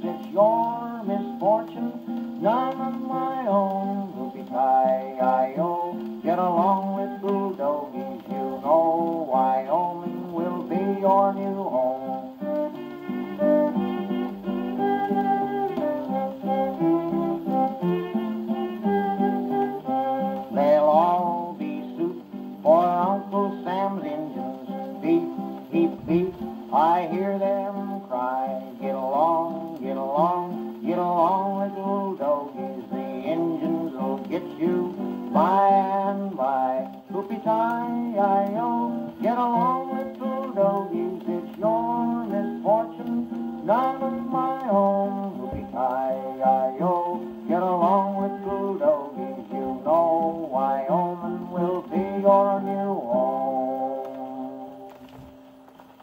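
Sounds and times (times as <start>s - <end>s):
strummed guitar on old record: 0.0s - 56.0s.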